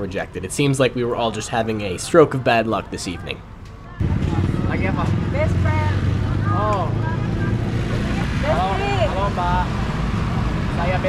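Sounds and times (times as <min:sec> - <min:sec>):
motorbike traffic rumble: 0:03.4 - 0:11.0.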